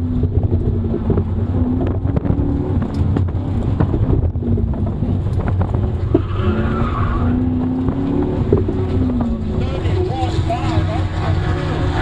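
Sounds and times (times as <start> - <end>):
low engine and road drone: 0.0 - 12.0.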